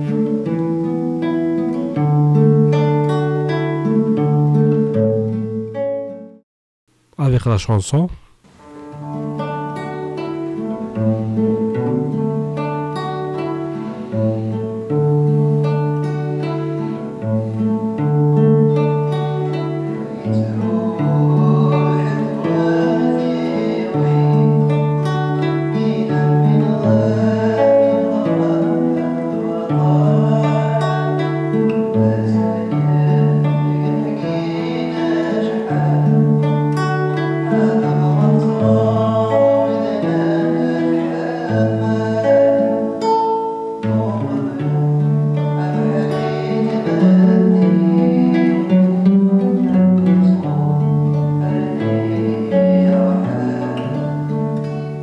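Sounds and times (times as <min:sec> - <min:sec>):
classical guitar fingerpicking: 0:00.0 - 0:06.4, 0:08.4 - 0:55.0.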